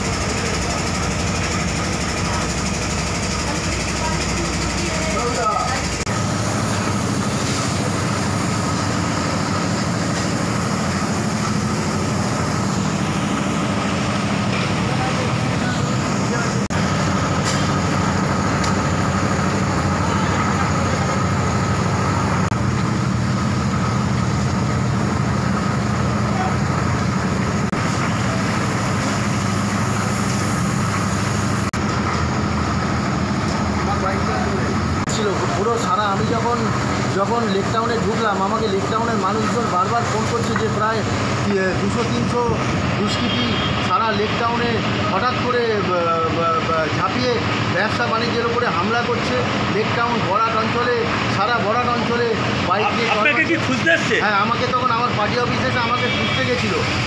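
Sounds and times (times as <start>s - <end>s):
traffic: 2.2s - 57.0s.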